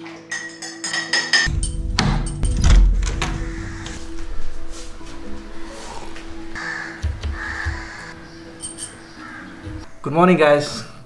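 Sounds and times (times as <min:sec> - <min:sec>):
background music held tones: 0:00.0 - 0:11.0
crow cawing: 0:03.4 - 0:04.1, 0:06.6 - 0:08.4, 0:09.0 - 0:09.8.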